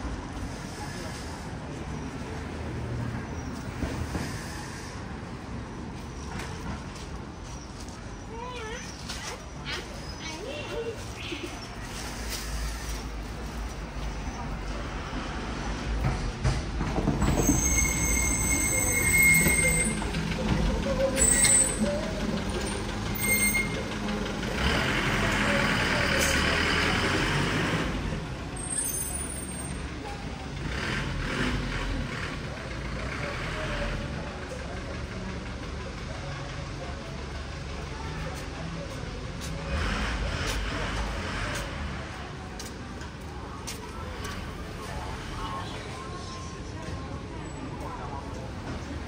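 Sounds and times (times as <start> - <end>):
passers-by talking: 0.0 - 49.0
rumble of traffic: 0.0 - 49.0
vehicle passing by: 39.4 - 42.3.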